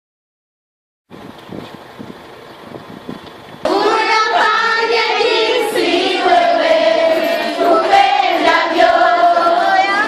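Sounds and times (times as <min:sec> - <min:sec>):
children singing together: 0:03.6 - 0:10.0.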